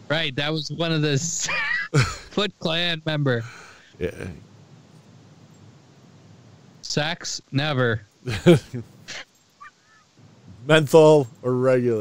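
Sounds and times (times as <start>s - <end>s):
men laughing: 1.2s - 2.5s, 8.3s - 10.0s
breathy exhale: 3.4s - 4.0s.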